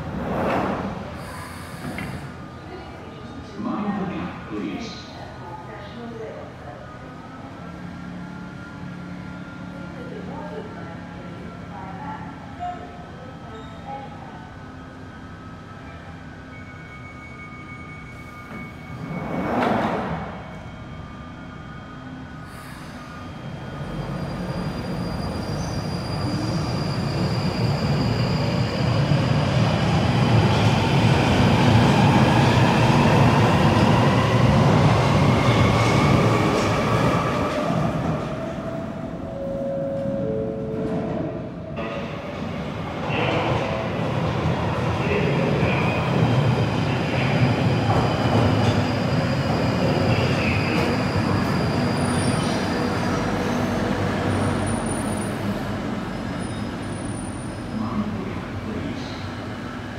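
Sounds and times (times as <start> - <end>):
train rumbling in: 0.0 - 6.0, 14.2 - 59.9
wheel squeals: 48.0 - 53.7.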